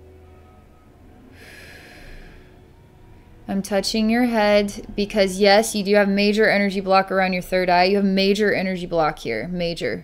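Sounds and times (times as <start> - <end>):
low room hum: 0.0 - 10.0
woman breathing through nose: 1.3 - 3.2.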